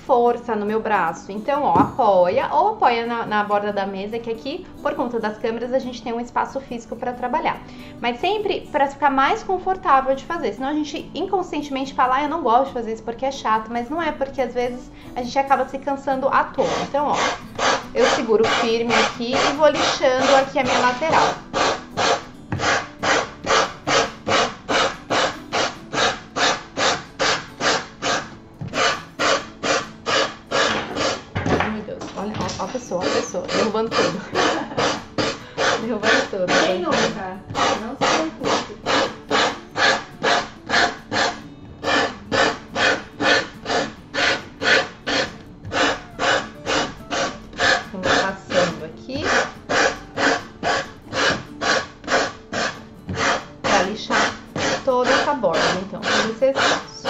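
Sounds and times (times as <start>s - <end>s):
sanding block rasping: 16.6s - 31.3s, 32.6s - 56.9s.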